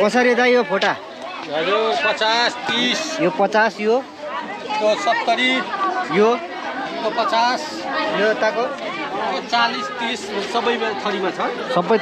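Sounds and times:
people talking over each other: 0.0 - 12.0.

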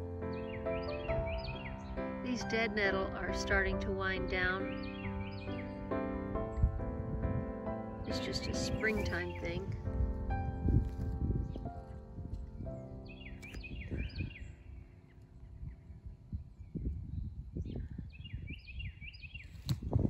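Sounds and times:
soft background music: 0.0 - 16.0
rustling in grass: 8.2 - 9.6, 10.2 - 12.6
footsteps in grass: 8.4 - 12.6
songbird whistling: 13.0 - 14.8.

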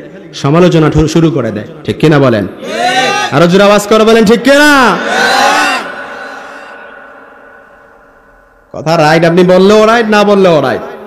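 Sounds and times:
long echo: 0.0 - 11.0.

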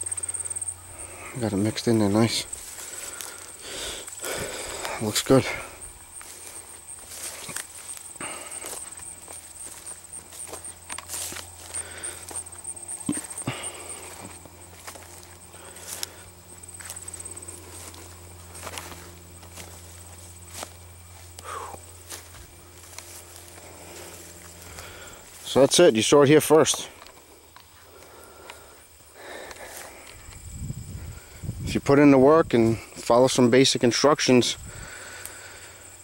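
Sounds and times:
footsteps through crops: 0.0 - 30.5
plants rustling against legs: 0.0 - 31.4.

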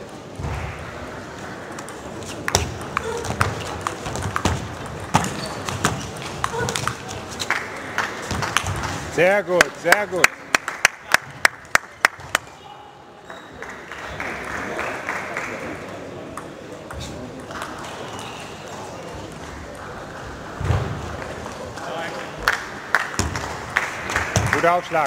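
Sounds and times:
voices in a hall: 0.0 - 25.0
table tennis ball hits: 1.8 - 7.2.

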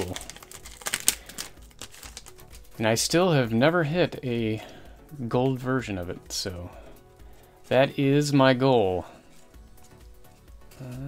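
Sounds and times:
foil wrapper crinkling as torn: 0.0 - 2.6.

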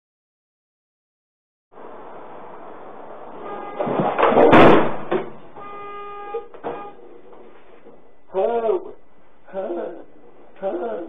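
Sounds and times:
road and cabin noise: 1.7 - 10.9
vehicle braking: 1.8 - 8.3
loud crash against wall: 3.4 - 5.6
steady held tone: 5.5 - 7.2.

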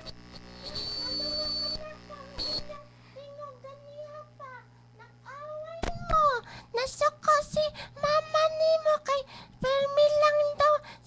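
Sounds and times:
high child-like voice singing: 1.0 - 10.8.

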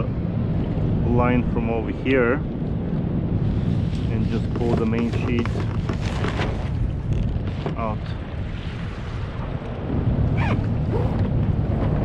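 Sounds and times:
water washing along hull: 0.0 - 12.0
wind buffeting microphone: 0.0 - 12.0.

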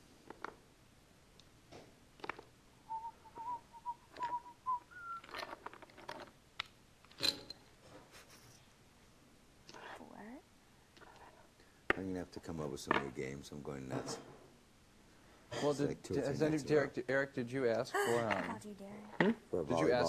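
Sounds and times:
person whistling quietly: 2.9 - 5.4
murmured voices: 19.6 - 20.0.

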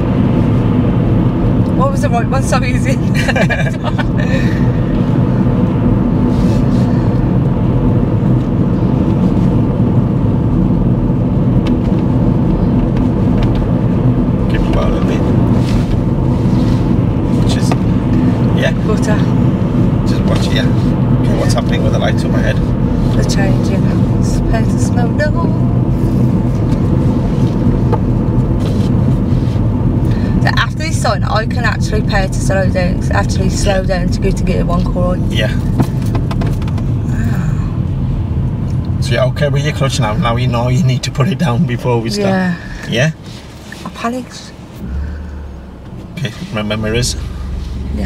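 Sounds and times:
car engine and tyre noise: 0.0 - 48.0
people talking and laughing: 2.9 - 4.8.

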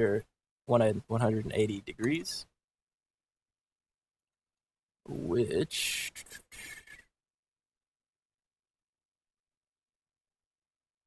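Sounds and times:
man speaking: 0.0 - 2.5, 5.1 - 6.9
short breath: 6.1 - 7.1.

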